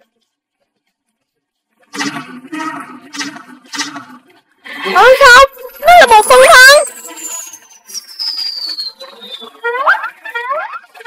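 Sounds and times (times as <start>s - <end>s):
steady low hum: 1.9s - 5.8s.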